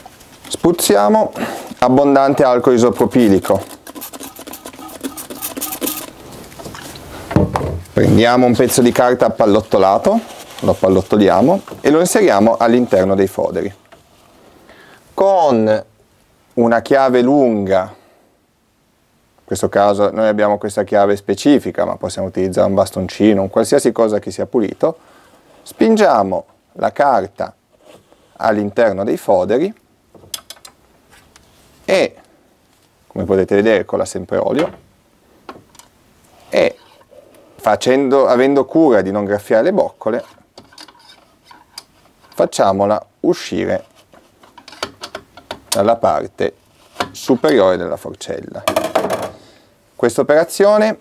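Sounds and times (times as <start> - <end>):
metal tool scraping inside tube: 3.0 - 6.3, 36.4 - 37.2, 40.2 - 42.4
dull thump: 7.3 - 7.8.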